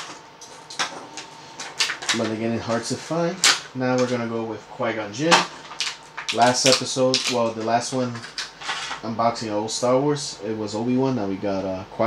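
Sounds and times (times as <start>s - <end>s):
plastic packaging crinkling: 0.0s - 4.2s, 5.2s - 9.0s.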